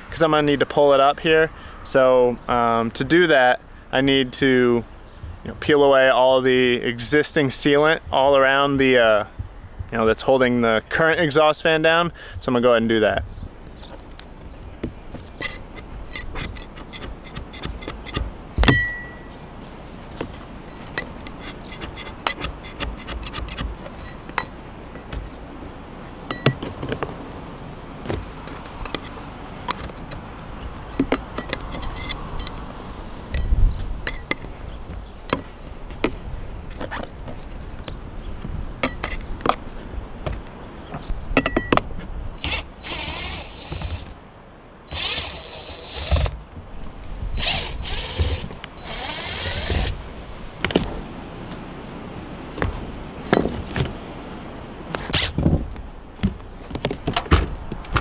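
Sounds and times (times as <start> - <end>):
putty knife scraping sealant: 20.8 - 23.7.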